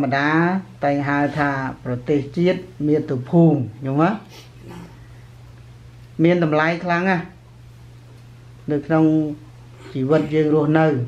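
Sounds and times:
steady low hum: 0:00.0 - 0:11.0
man preaching: 0:08.8 - 0:11.0.

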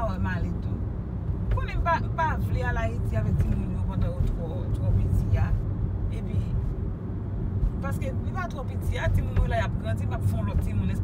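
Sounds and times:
people talking: 0:00.0 - 0:00.8, 0:01.6 - 0:06.5, 0:07.8 - 0:11.0
car engine rumble inside cabin: 0:00.0 - 0:11.0
tyres on the road: 0:00.0 - 0:11.0.

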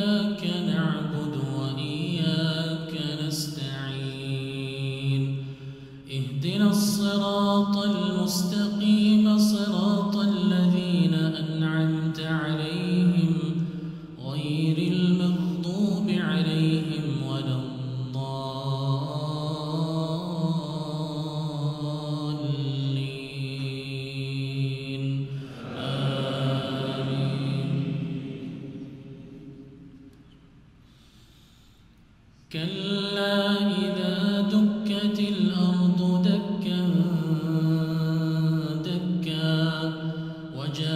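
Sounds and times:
man chanting through microphone: 0:00.0 - 0:29.8, 0:32.5 - 0:40.9.

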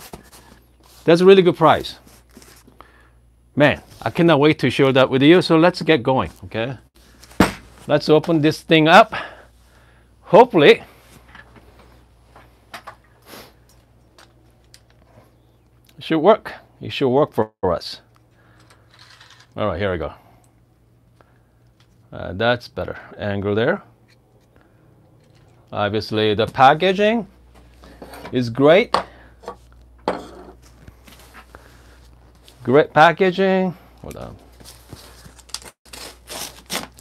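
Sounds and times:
low steady hum: 0:00.0 - 0:36.9.

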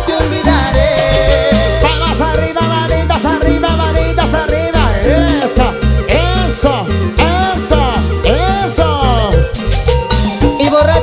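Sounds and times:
drum beat: 0:00.0 - 0:11.0
electric bass: 0:00.0 - 0:11.0
lead melody with sliding notes: 0:00.0 - 0:11.0.

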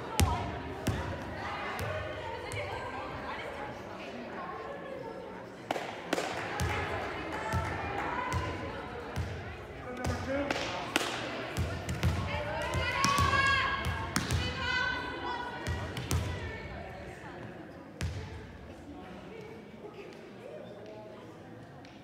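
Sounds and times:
girls calling and chattering: 0:00.0 - 0:10.0, 0:10.8 - 0:17.7
volleyball bouncing on wooden floor: 0:11.6 - 0:14.5.

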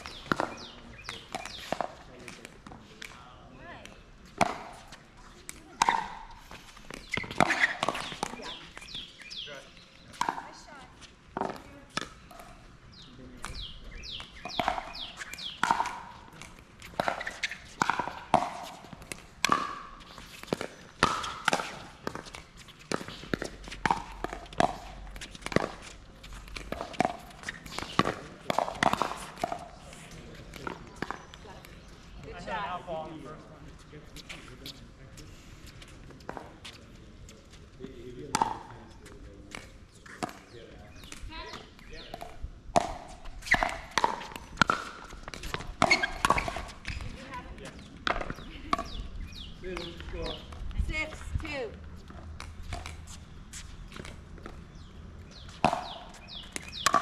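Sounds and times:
ball bouncing on court: 0:00.0 - 0:03.2, 0:03.8 - 0:09.4, 0:10.1 - 0:10.7, 0:11.4 - 0:12.5, 0:13.4 - 0:32.3, 0:38.3 - 0:53.2, 0:55.3 - 0:57.0
footsteps: 0:33.6 - 0:41.8, 0:42.8 - 0:57.0.

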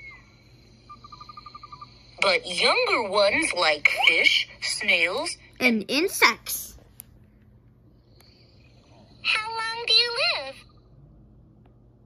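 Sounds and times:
faint high animal trill: 0:00.0 - 0:02.9.

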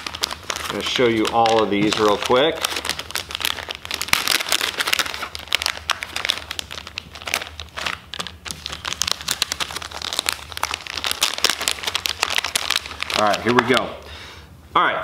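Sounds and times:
plastic packages crinkling: 0:00.0 - 0:14.1.

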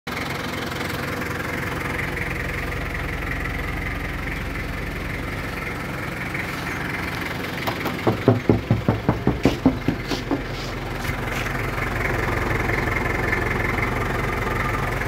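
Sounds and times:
car engine idling: 0:00.1 - 0:15.0.

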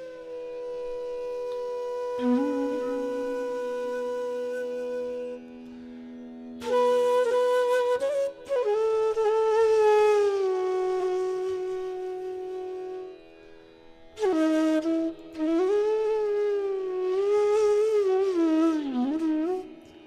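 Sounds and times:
bamboo flute melody: 0:00.0 - 0:05.9, 0:06.6 - 0:20.0.

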